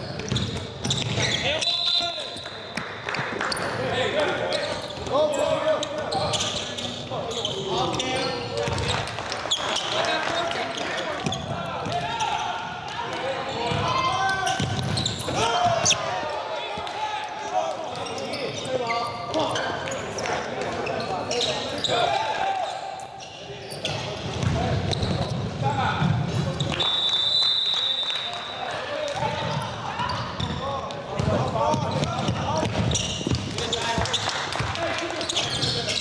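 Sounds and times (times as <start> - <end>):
players and spectators calling out: 9.5 - 36.0.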